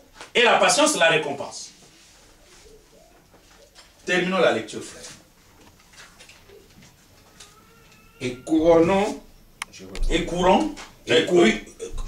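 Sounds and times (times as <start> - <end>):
bird cooing: 2.2 - 3.8, 6.3 - 8.4.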